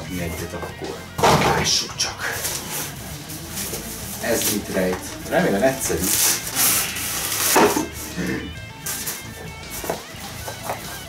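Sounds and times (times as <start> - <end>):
background music: 0.0 - 11.0
fabric bag rustling: 2.2 - 10.5.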